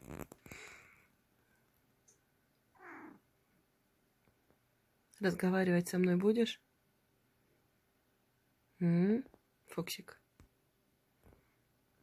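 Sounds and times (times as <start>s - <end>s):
cat mewing softly: 2.7s - 3.2s.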